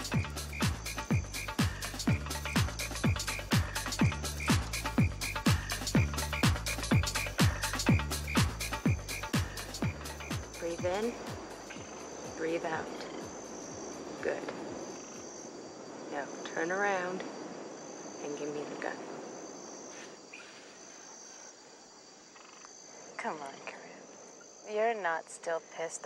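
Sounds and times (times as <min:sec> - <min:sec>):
insects chirring: 0:00.0 - 0:26.0.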